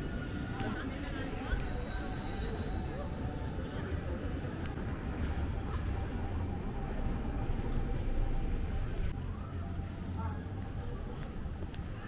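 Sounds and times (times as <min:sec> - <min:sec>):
low street rumble: 0:00.0 - 0:12.0.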